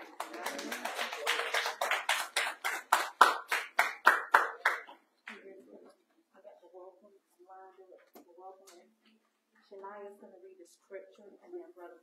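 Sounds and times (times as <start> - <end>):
hands clapping quickly: 0.0 - 5.4.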